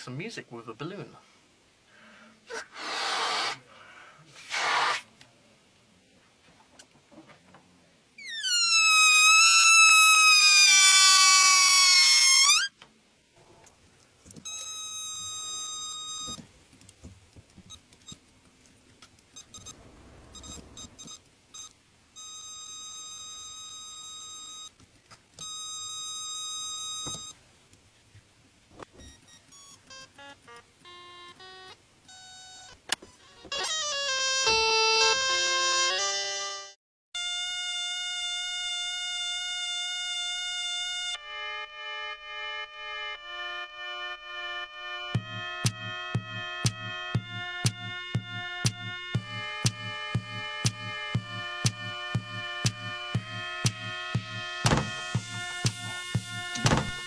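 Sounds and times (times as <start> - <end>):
air squealing from balloon: 2.5 - 3.7, 4.4 - 5.1
sampled squeal instrument notes: 8.2 - 12.7, 45.0 - 57.0.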